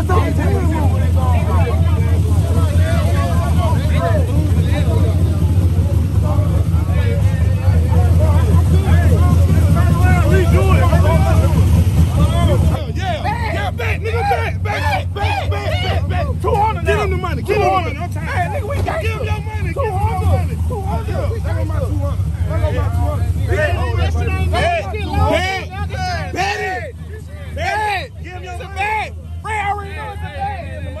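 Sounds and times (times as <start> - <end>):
car engine idling: 0.0 - 31.0
men talking over one another: 0.0 - 31.0.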